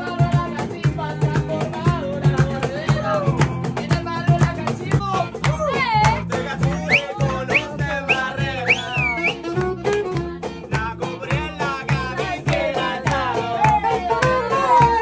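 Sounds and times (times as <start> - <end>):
strummed acoustic guitar: 0.0 - 15.0.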